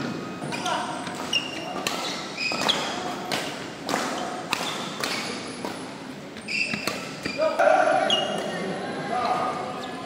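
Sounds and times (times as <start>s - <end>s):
shoes squeaking on court: 0.1s - 8.6s
rackets hitting shuttlecock: 0.5s - 6.0s, 6.6s - 8.6s.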